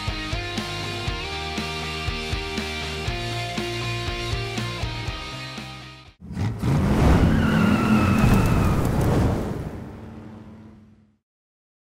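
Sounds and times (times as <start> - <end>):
car engine revving: 6.2 - 11.2
high squeal: 7.0 - 9.2.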